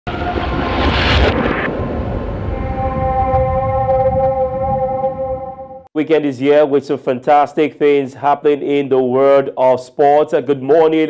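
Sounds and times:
whoosh with deep rumble: 0.1s - 5.9s.

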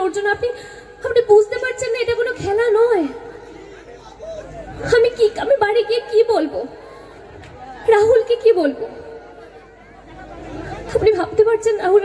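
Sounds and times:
woman speaking into microphone: 0.0s - 3.2s, 7.8s - 9.0s, 10.9s - 12.0s
audience chatter: 2.7s - 5.6s, 6.5s - 12.0s.

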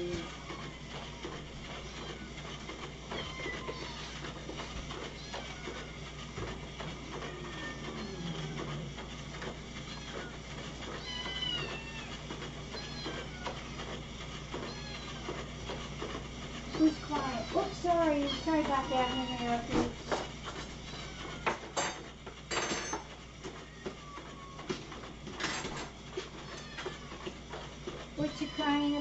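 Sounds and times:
cats meowing: 0.0s - 6.0s, 7.0s - 9.1s, 9.8s - 13.9s, 14.5s - 15.5s, 16.7s - 19.7s, 20.8s - 21.7s, 23.5s - 24.8s, 26.2s - 27.4s, 28.2s - 29.0s.

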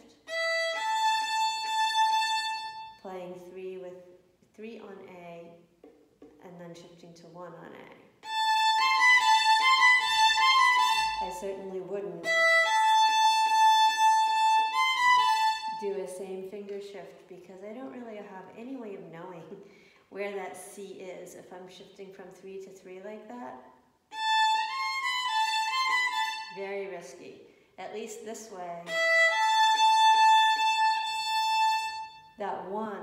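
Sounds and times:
bowed violin notes: 0.0s - 3.1s, 8.2s - 15.9s, 24.1s - 26.7s, 28.8s - 32.4s.

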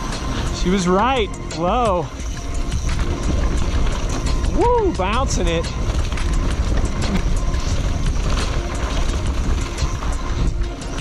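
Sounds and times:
mountain bike rattling: 0.0s - 11.0s
wind rushing over microphone: 0.0s - 11.0s
bike clicks and knocks: 2.2s - 11.0s.

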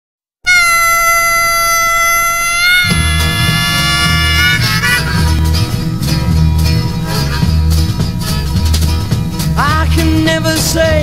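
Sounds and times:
harmonica long high note: 0.4s - 5.8s.

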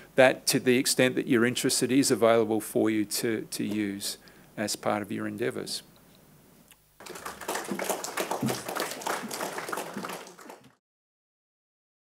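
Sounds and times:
audience applauding: 7.0s - 10.8s.

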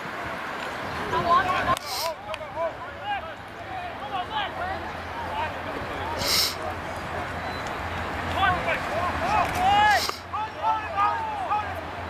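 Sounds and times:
players shouting: 1.0s - 12.0s.

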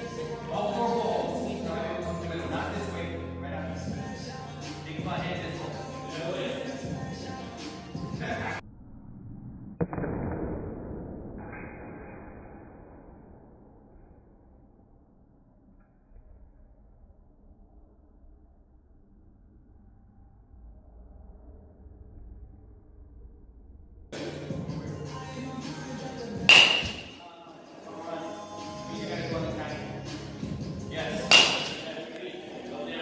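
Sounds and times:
background music: 0.0s - 8.6s, 24.2s - 33.0s
bat striking a ball: 26.5s - 27.2s, 31.2s - 32.0s.

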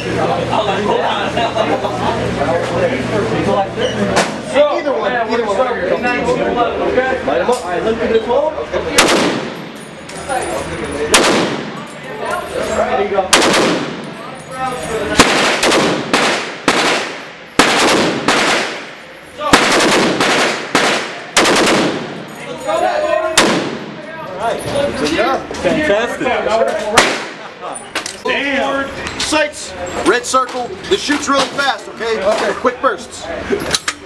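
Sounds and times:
machine gun bursts and single shots: 9.0s - 9.8s, 11.1s - 11.8s, 13.3s - 14.1s, 15.1s - 22.3s.

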